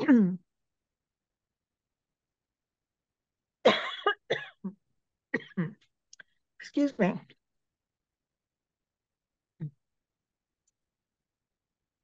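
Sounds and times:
woman coughing: 0:03.6 - 0:05.8.

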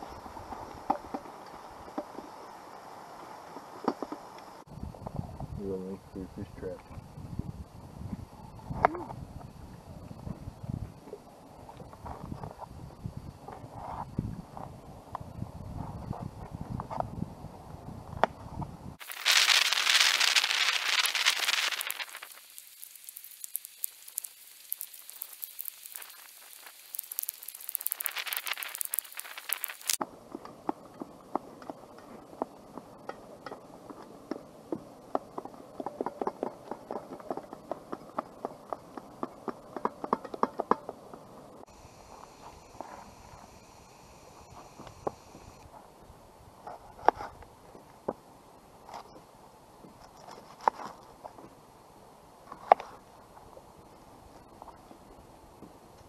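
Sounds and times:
loud hiss: 0:19.0 - 0:30.0.

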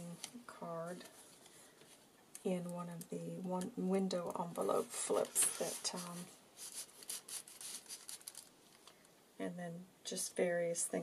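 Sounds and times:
paper card sliding into envelope: 0:05.3 - 0:08.4.

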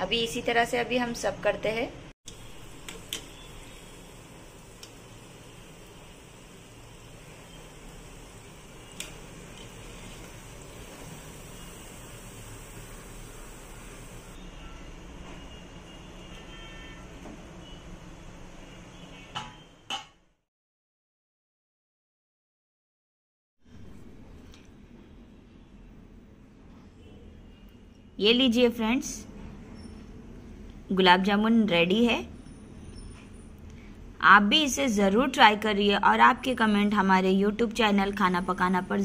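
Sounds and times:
food sizzling in hot oil: 0:02.3 - 0:14.4.

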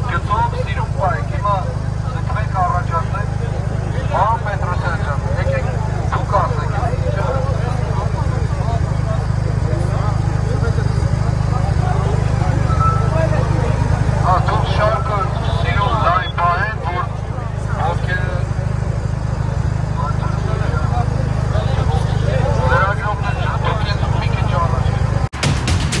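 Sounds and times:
crowd talking and calling out: 0:00.0 - 0:26.0.

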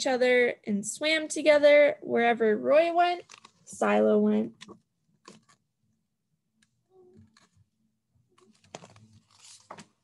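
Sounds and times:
book pages clicking and rustling: 0:03.2 - 0:03.6, 0:04.6 - 0:05.7, 0:07.2 - 0:07.7, 0:08.4 - 0:10.0.

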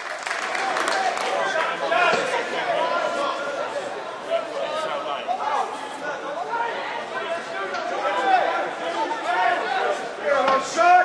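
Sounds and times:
crowd of overlapping voices: 0:00.0 - 0:11.0.

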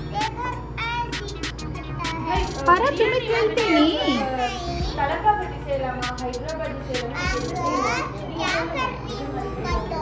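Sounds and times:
children chattering and squealing: 0:00.0 - 0:05.3, 0:06.0 - 0:10.0.

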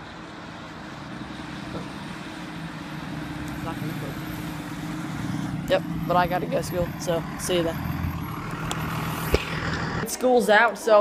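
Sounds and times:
bus engine humming: 0:00.0 - 0:11.0
road noise: 0:00.0 - 0:11.0.

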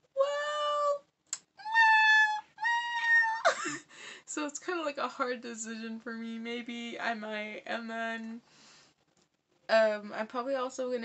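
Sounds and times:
woman whining vocal sounds: 0:01.6 - 0:03.7.

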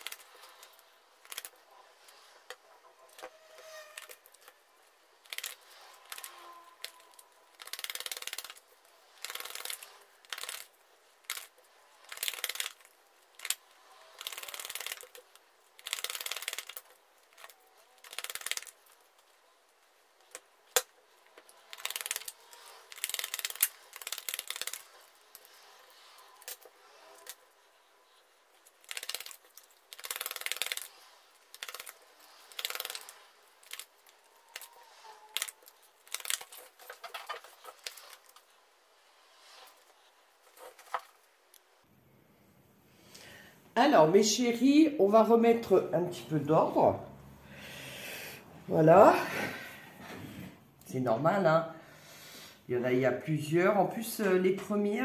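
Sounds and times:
cards flicked papery clicking: 0:05.2 - 0:19.0, 0:21.6 - 0:27.8, 0:28.7 - 0:38.5.

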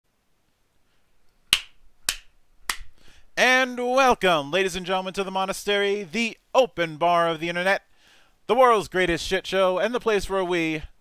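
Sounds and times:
sharp snap: 0:01.5 - 0:03.0.

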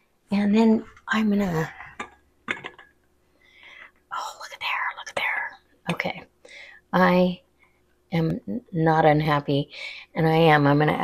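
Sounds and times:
person whispering: 0:04.1 - 0:06.1.

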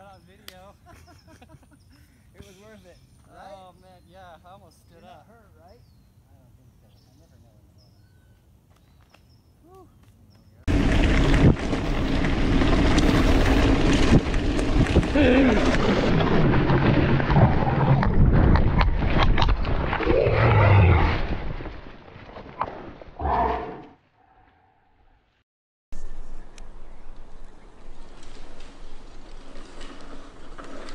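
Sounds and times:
bike rattling and knocking: 0:10.7 - 0:17.4
wind rushing over microphone: 0:10.7 - 0:21.7.

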